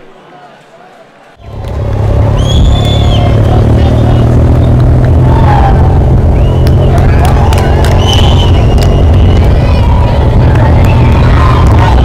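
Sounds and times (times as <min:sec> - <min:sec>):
crowd shouting: 0:00.0 - 0:12.0
bicycles low rumble: 0:01.4 - 0:12.0
shrill whistle blasts: 0:02.3 - 0:03.4, 0:06.3 - 0:07.0, 0:07.8 - 0:09.6.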